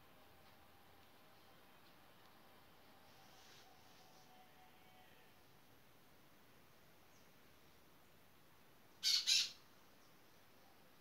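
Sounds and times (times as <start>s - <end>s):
faint background hiss: 0.0s - 11.0s
bird squawks: 9.0s - 9.6s.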